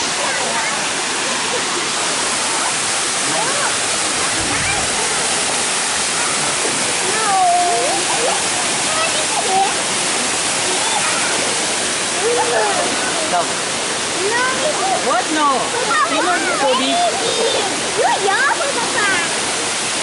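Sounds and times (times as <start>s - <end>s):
people calling out and chattering: 0.0s - 20.0s
waterfall rushing: 0.0s - 20.0s.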